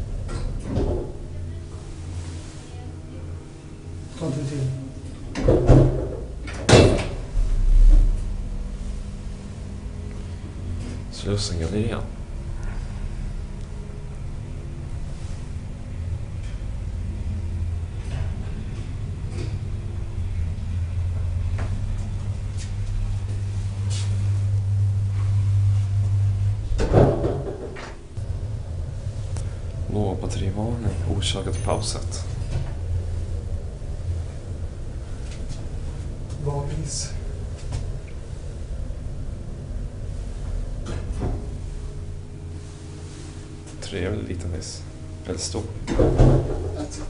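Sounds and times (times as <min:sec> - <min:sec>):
hydraulic pump humming: 0:00.0 - 0:47.0
low steady rumble: 0:00.0 - 0:47.0
soft scrape: 0:01.8 - 0:02.9, 0:23.3 - 0:24.5
elevator doors clattering slide: 0:03.3 - 0:47.0
loud bang of elevator doors: 0:05.3 - 0:09.1, 0:24.1 - 0:29.7, 0:45.8 - 0:47.0.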